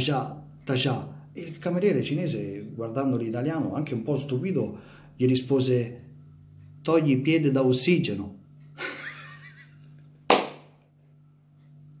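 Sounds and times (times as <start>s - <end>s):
faint low hum: 0.0s - 12.0s
sharp hand clap: 10.3s - 10.8s.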